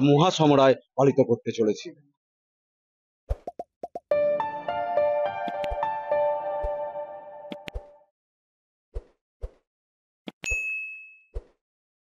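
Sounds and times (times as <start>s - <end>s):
bright bell ding: 10.4s - 11.3s.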